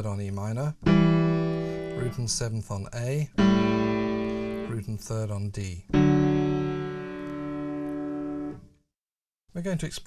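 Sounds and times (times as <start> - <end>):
piano chord ringing: 0.8 - 2.4, 3.3 - 5.1, 5.9 - 8.7.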